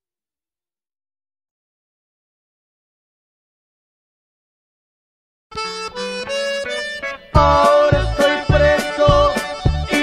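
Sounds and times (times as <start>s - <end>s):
free-reed instrument notes: 5.5s - 10.0s.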